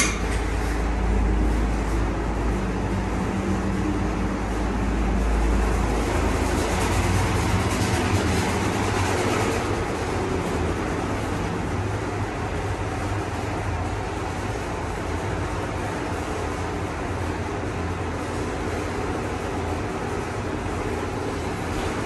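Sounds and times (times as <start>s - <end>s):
elevator ride rumble and hiss: 0.0s - 22.0s
ventilation fan running: 0.0s - 22.0s.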